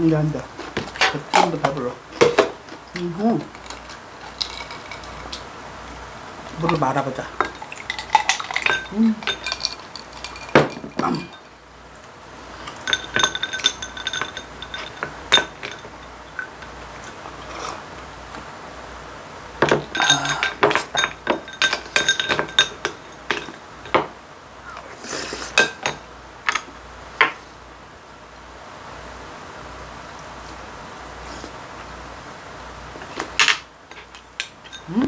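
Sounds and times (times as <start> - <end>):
metal spoon clinking on ceramic bowl: 7.4 - 11.5, 12.8 - 16.0, 19.7 - 24.0.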